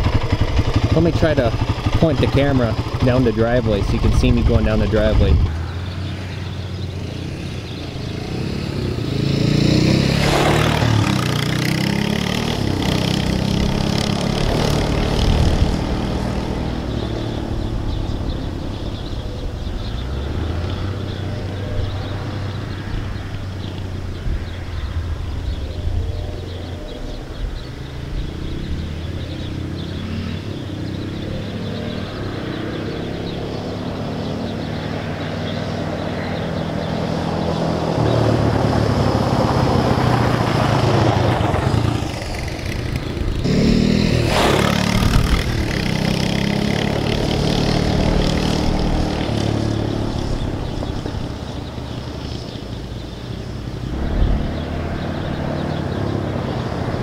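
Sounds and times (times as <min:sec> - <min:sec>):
atv engine running: 0:00.0 - 0:57.0.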